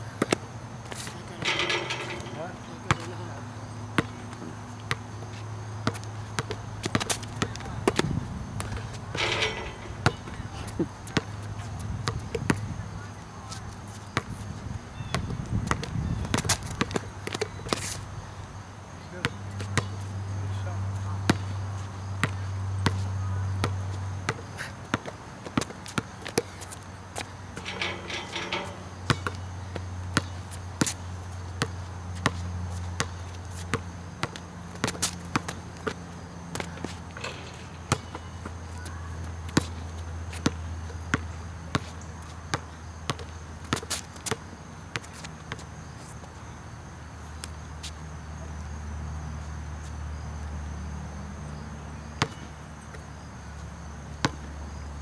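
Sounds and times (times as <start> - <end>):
basketball bouncing on asphalt: 0.2 - 12.8, 15.0 - 18.0, 22.2 - 45.7, 52.2 - 53.0.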